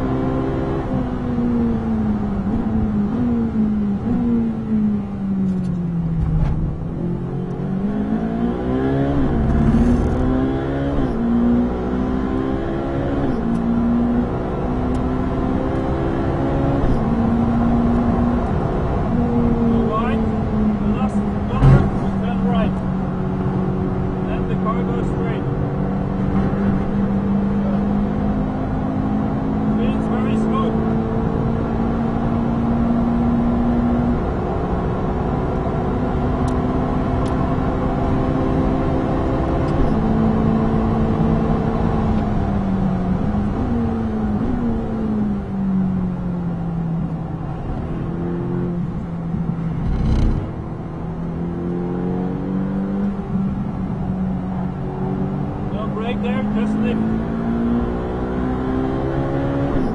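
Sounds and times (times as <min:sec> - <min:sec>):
car engine accelerating hard: 0:00.0 - 0:59.9
loud thump: 0:21.6 - 0:22.2.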